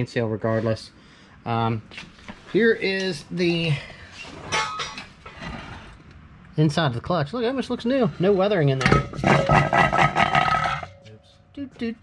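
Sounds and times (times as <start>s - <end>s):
metal car parts clinking: 4.5s - 5.4s, 8.8s - 11.2s.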